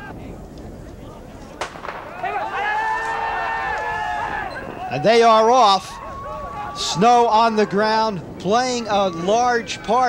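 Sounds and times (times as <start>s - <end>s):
starting gun firing: 1.6s - 2.2s
spectators shouting: 1.7s - 10.0s.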